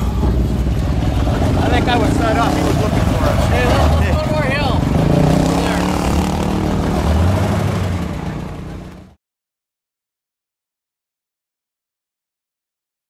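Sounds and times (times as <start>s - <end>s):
people's voices: 0.0s - 9.1s
car engine running: 0.0s - 9.2s.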